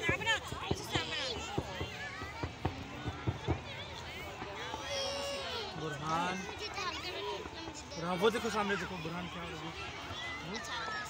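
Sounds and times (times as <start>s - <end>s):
fireworks popping and banging: 0.0s - 5.2s
crowd chatter: 0.0s - 11.0s.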